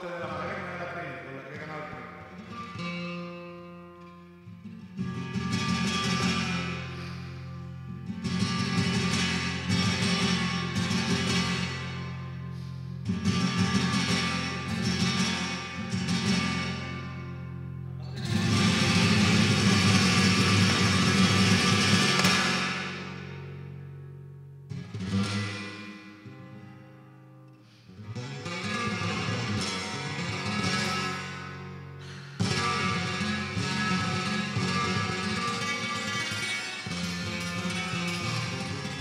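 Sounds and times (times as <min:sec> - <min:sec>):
solo flamenco guitar: 0:00.0 - 0:39.0.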